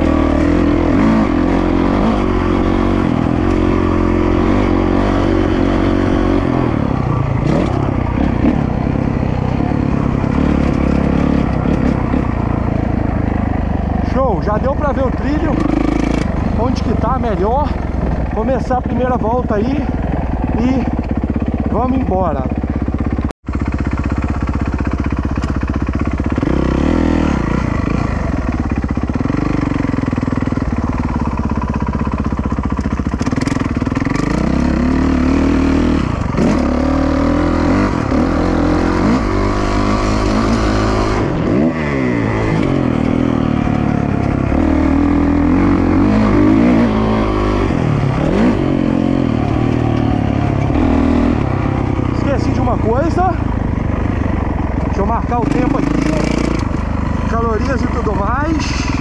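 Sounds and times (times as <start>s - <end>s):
motocross bike engine revving: 0.0s - 59.0s.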